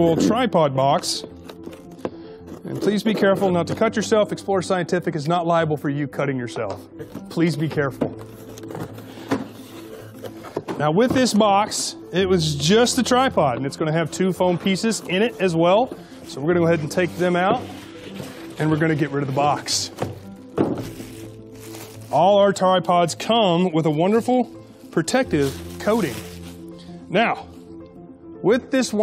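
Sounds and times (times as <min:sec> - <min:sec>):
dull thunks of tripod handling: 0:08.0 - 0:09.6, 0:20.0 - 0:21.0
cardboard flaps scraping and rustling: 0:14.4 - 0:22.2, 0:25.0 - 0:26.6
plastic wrap crinkling: 0:14.7 - 0:23.2, 0:24.0 - 0:26.7.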